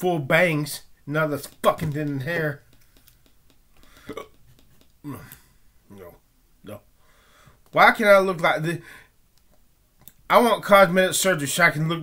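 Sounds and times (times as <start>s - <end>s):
faint clicks: 1.4s - 5.4s.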